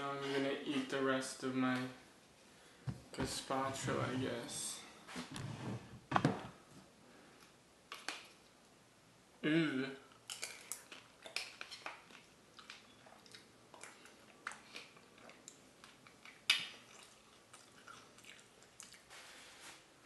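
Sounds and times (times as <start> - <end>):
wet mouth eating sounds: 10.1 - 19.4.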